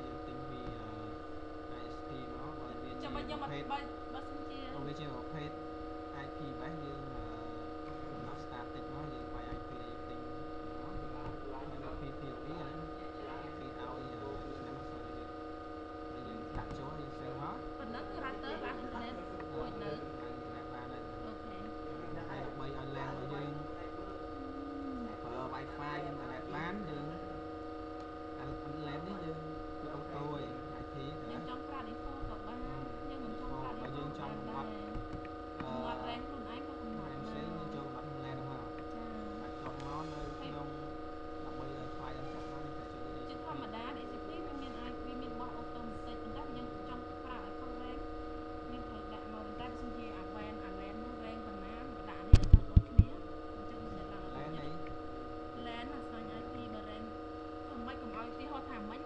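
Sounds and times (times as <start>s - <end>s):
faint voice-like sounds: 0.0s - 3.8s, 4.6s - 5.6s, 6.2s - 15.3s, 16.2s - 27.3s, 28.4s - 47.9s, 48.7s - 54.9s
electrical hum: 0.0s - 59.0s.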